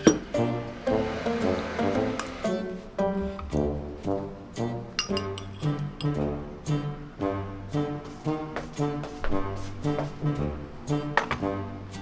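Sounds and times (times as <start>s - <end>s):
background music: 0.0s - 12.0s
metal spoon clinking on glass bowl: 5.0s - 6.2s.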